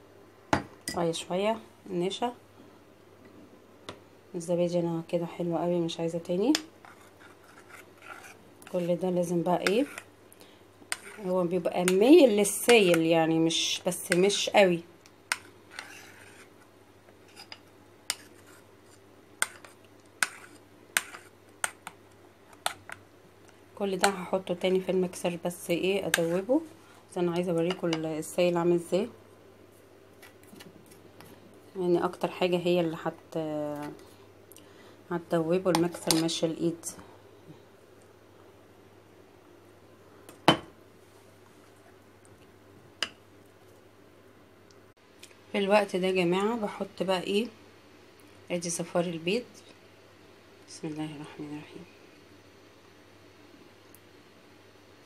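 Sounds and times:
spoon stirring wet mixture: 6.2s - 28.5s, 35.6s - 36.5s.

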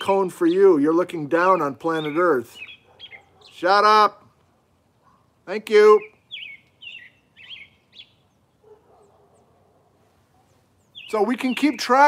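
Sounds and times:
robin singing whistled notes: 1.3s - 3.8s, 5.8s - 8.6s, 10.4s - 12.0s.

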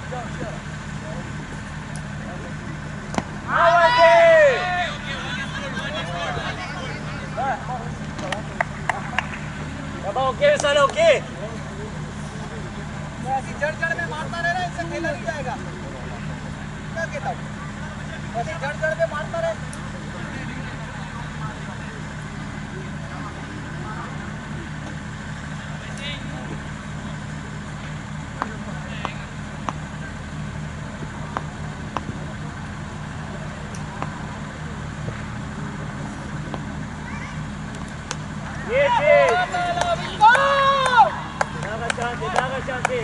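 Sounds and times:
steady low hum: 0.0s - 43.0s
players shouting on a field: 3.1s - 11.4s, 38.3s - 43.0s.

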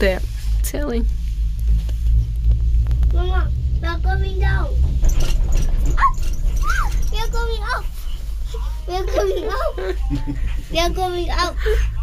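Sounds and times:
cable car cabin rumble: 0.0s - 12.0s
child speaking: 3.1s - 4.8s, 5.9s - 9.9s, 10.7s - 11.8s.

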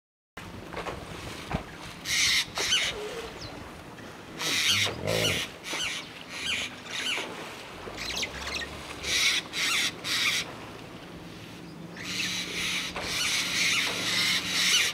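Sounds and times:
hippos splashing water: 0.4s - 14.9s
hippo grunt: 4.4s - 5.5s.

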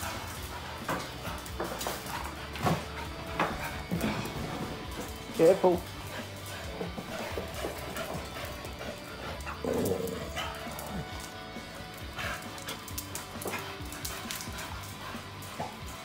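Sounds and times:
background music: 0.0s - 16.0s
dogs playing: 0.0s - 16.0s.

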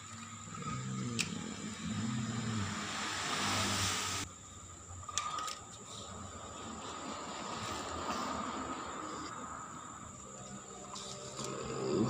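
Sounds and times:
person making engine noises: 0.0s - 4.3s
loud hiss: 1.2s - 4.3s.

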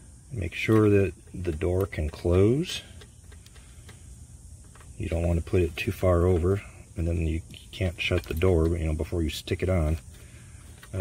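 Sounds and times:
low background noise: 0.0s - 11.0s.

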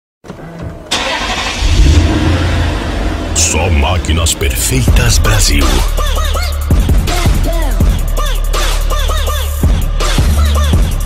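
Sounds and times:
car engine starting: 0.3s - 8.1s.

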